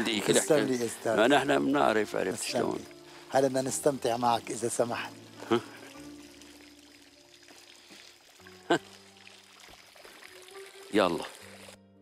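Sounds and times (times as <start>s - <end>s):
fountain trickling: 0.0s - 11.8s.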